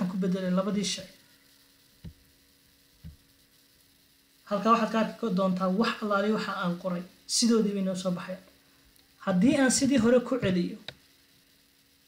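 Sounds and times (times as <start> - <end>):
faint mains hum: 0.0 - 12.0.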